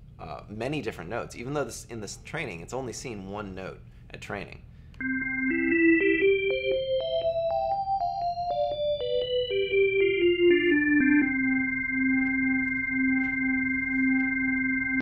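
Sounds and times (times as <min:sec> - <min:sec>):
organ playing a run of notes: 0:05.0 - 0:15.0.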